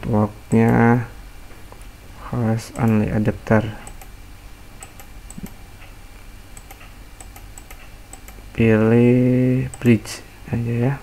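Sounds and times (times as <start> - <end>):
low steady hum: 0.0 - 11.0
computer mouse clicks: 3.8 - 4.1, 4.8 - 6.0, 6.6 - 8.4, 9.7 - 9.9.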